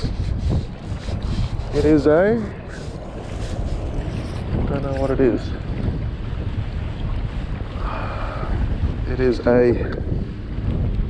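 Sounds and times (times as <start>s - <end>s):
choppy water against kayak: 0.0s - 11.0s
wind buffeting microphone: 0.0s - 11.0s.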